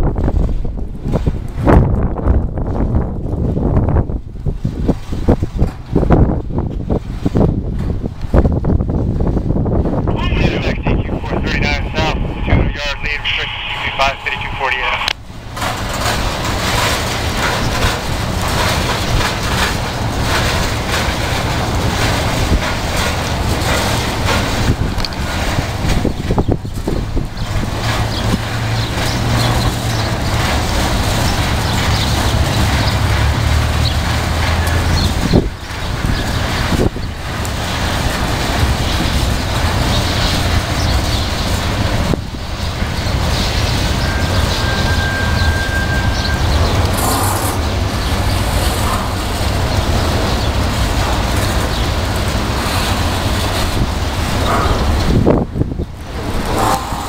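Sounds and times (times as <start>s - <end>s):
freight train rumbling and rattling: 0.0s - 57.0s
wind buffeting microphone: 0.0s - 57.0s.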